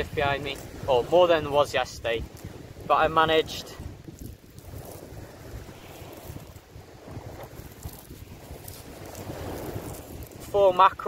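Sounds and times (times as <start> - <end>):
surf on shingle beach: 0.0 - 11.0
wind buffeting microphone: 0.0 - 11.0.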